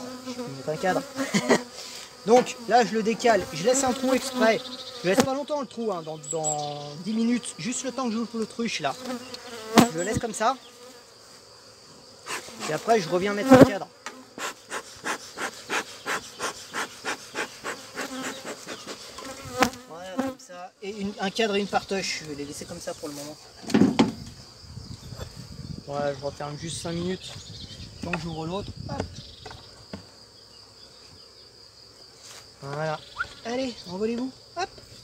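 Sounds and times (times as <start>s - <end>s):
high-pitched insect trill: 0.0s - 35.0s
honeybees buzzing: 0.0s - 35.0s
bellows smoker puffing: 12.2s - 12.8s, 14.3s - 19.4s.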